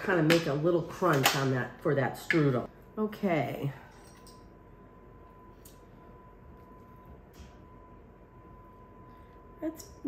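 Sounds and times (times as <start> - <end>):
faint high-pitched hum: 2.6 - 10.0.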